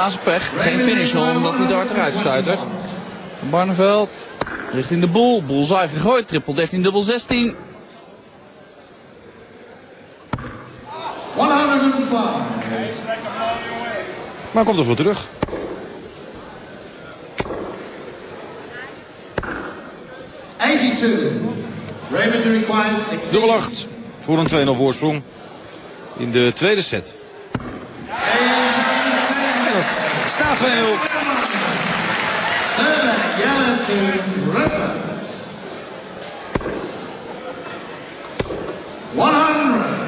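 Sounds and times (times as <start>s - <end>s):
crowd murmur: 0.0s - 4.7s, 27.2s - 40.0s.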